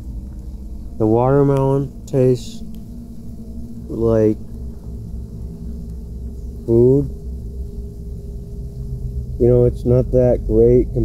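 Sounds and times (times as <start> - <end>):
faint even hum: 0.0 - 11.0
low background rumble: 0.0 - 11.0.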